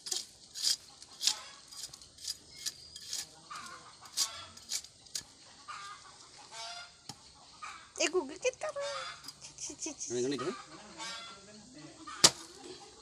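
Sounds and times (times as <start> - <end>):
metal blade scraping soil: 0.0 - 6.8, 9.2 - 9.5
fowl clucking: 5.5 - 13.0.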